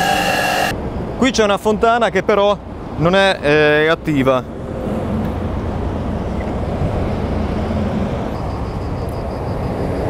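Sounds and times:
motorway traffic noise: 0:00.0 - 0:10.0
low engine hum: 0:04.4 - 0:10.0.

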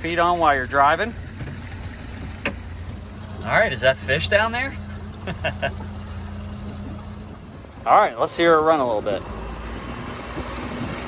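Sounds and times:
outboard motor running: 0:00.0 - 0:11.0.

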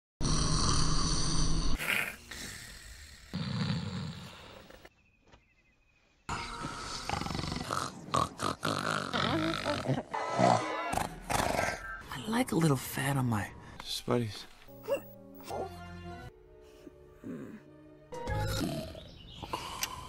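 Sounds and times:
cartoon snoring and grunting: 0:00.2 - 0:04.7, 0:06.3 - 0:11.8, 0:17.2 - 0:20.0.

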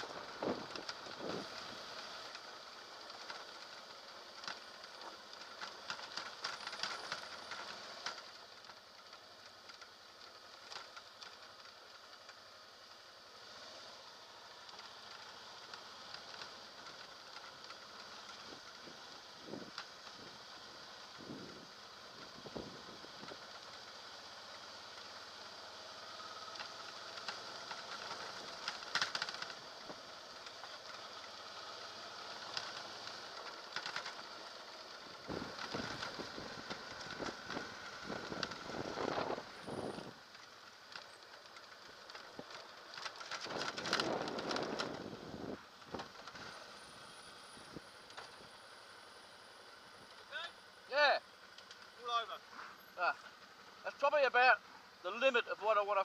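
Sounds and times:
motorcycle rattling over rough road: 0:00.0 - 0:56.0.

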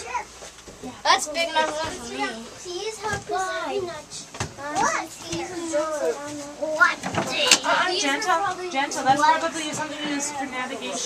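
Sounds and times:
children talking: 0:00.0 - 0:11.0.

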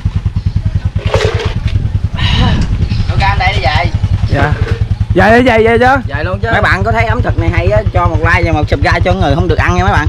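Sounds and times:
motorbike engine idling: 0:00.0 - 0:10.0.

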